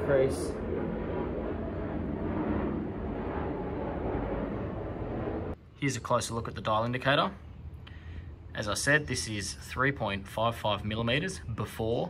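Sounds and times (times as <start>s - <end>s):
low rushing hum: 0.0s - 12.0s.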